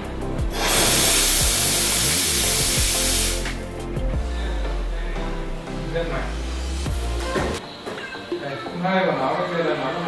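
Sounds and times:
steam wand hissing: 0.5s - 3.6s.

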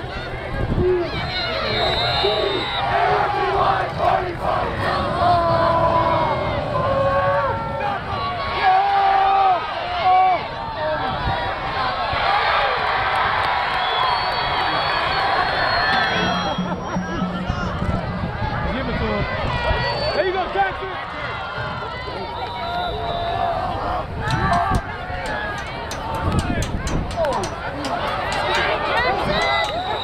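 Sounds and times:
crowd cheering and shouting: 0.0s - 30.0s.

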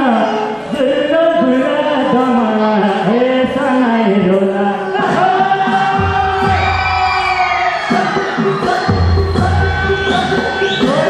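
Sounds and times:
loud amplified folk music: 0.0s - 11.0s
man singing into a microphone: 0.0s - 11.0s.

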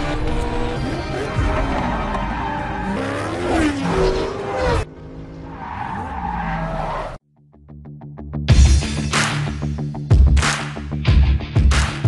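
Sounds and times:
car engines revving hard: 0.0s - 7.2s.

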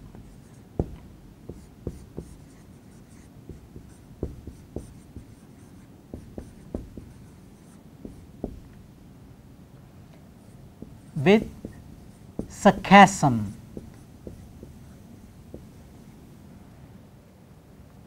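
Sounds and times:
marker writing on whiteboard: 0.0s - 8.9s, 10.4s - 16.1s.

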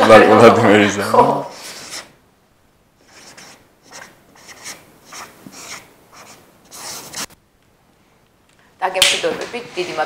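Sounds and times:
marker pen scratching on panel: 1.5s - 2.1s, 3.0s - 7.4s.

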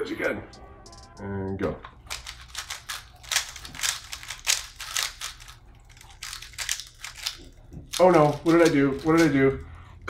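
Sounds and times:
plastic clicks of puzzle cubes turning: 0.9s - 9.7s.

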